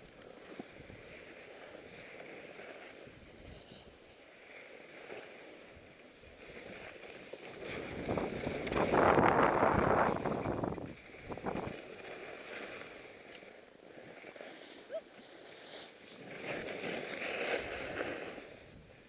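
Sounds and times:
skis scraping over hard snow: 0.0 - 19.0
wind noise on microphone: 5.8 - 12.8.

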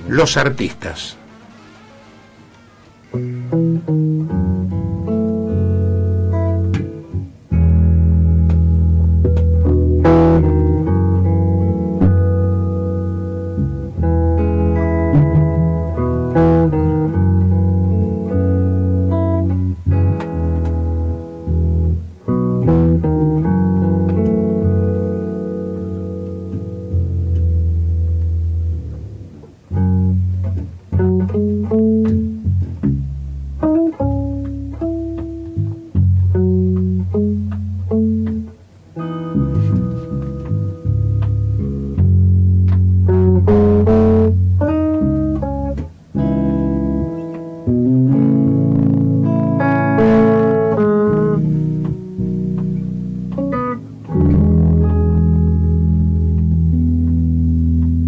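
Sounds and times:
electric bass notes: 0.0 - 58.0
electric guitar jazz melody: 2.5 - 58.0.

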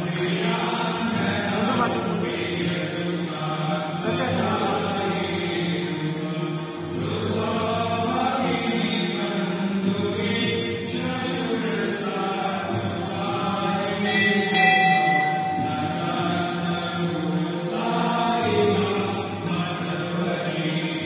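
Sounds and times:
devotional chanting: 0.0 - 21.0
music: 0.0 - 21.0.

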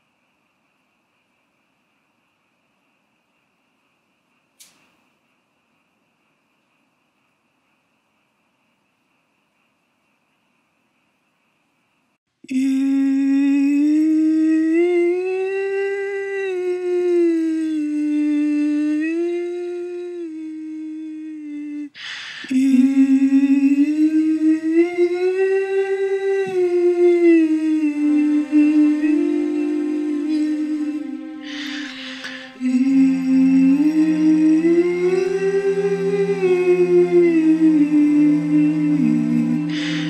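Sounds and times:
person humming a melody: 12.4 - 40.0
person breathing: 21.5 - 23.1, 30.6 - 33.3, 39.2 - 40.0.

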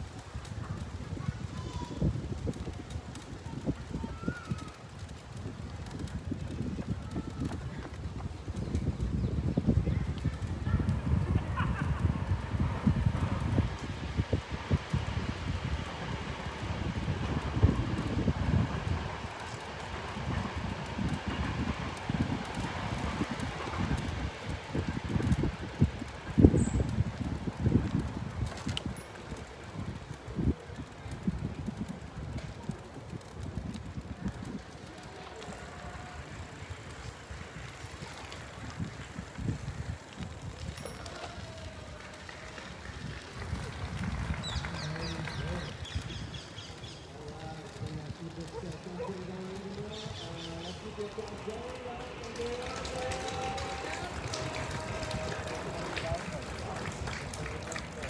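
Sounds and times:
faint voices: 0.0 - 58.0
wind rumbling on microphone: 0.0 - 58.0.

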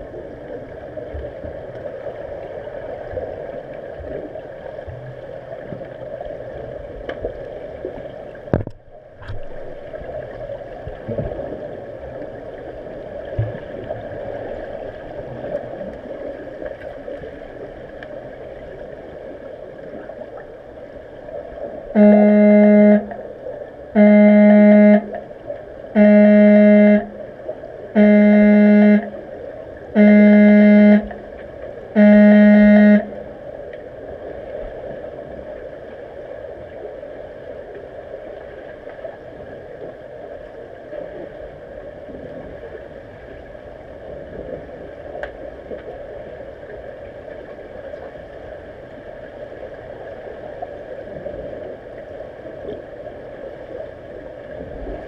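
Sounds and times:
pool water hiss and gurgle underwater: 0.0 - 55.0
underwater signal horn: 21.8 - 33.6.

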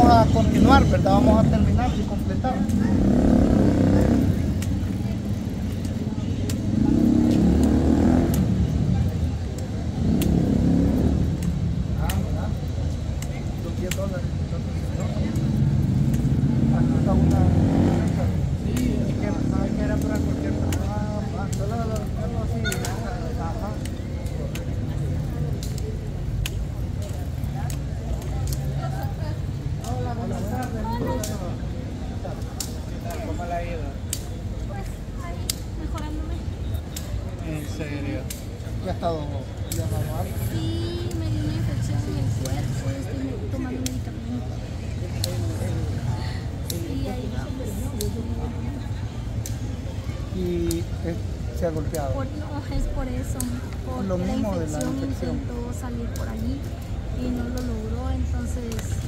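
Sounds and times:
passers-by talking: 0.0 - 59.0
people's voices: 0.0 - 59.0
street traffic rumble: 0.0 - 59.0
vehicle engine humming: 0.0 - 59.0.

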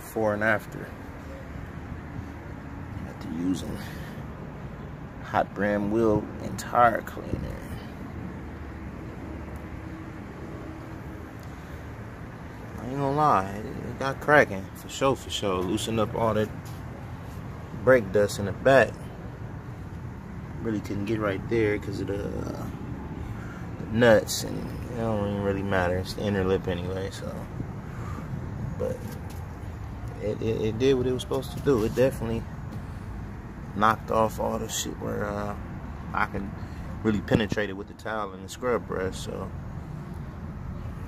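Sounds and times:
low outdoor rumble: 0.0 - 41.0.

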